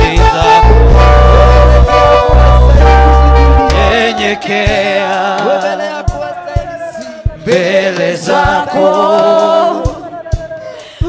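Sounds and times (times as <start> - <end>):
person singing through microphone: 0.0 - 11.0.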